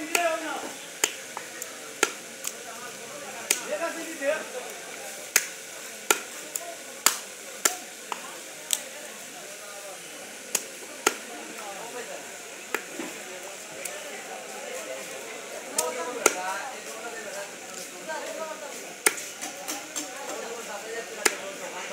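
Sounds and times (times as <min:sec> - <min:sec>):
knife chopping fish on wood block: 0:16.2 - 0:16.4, 0:19.0 - 0:20.4.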